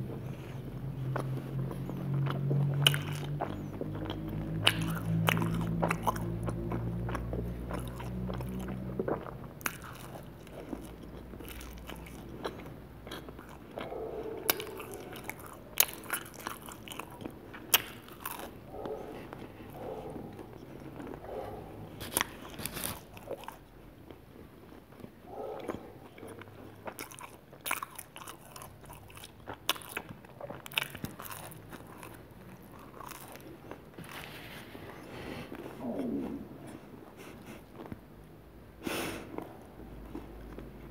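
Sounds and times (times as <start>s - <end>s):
biting and chewing pizza: 0.0s - 40.9s
low steady hum: 0.0s - 40.9s.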